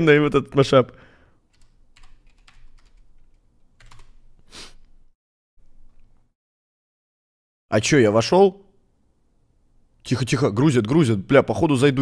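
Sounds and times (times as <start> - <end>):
keyboard typing clicks: 1.5 - 4.2.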